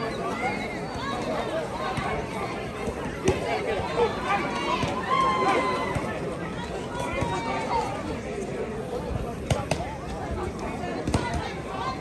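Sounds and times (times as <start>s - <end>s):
spectators talking and calling out: 0.0s - 12.0s.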